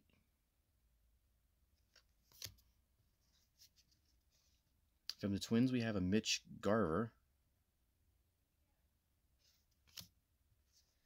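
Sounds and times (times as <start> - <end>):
cards rustling: 1.8 - 4.6, 9.4 - 10.1.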